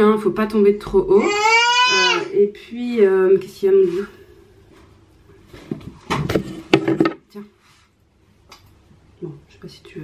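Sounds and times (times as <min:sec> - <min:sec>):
small objects knocking and rustling: 0:05.7 - 0:07.3.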